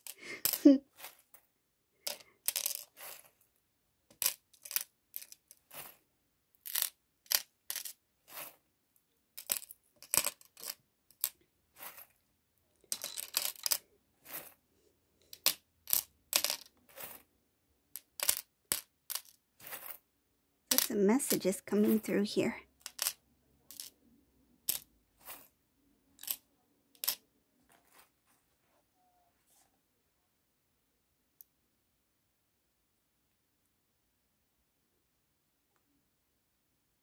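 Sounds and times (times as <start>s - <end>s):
metal charms clinking on tray: 4.1s - 6.0s, 12.9s - 14.5s, 20.7s - 23.9s.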